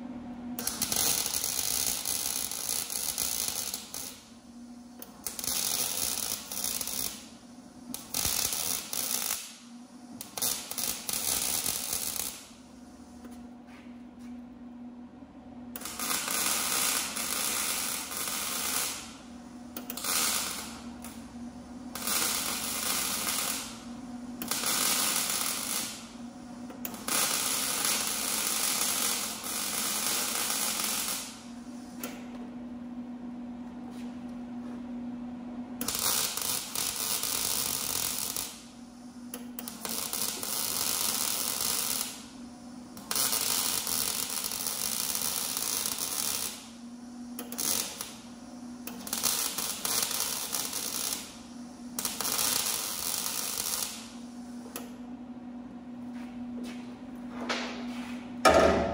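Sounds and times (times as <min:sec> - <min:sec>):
low steady hum: 0:00.0 - 0:58.9
welding arc crackling: 0:00.6 - 0:12.6, 0:15.8 - 0:32.3, 0:35.8 - 0:55.0.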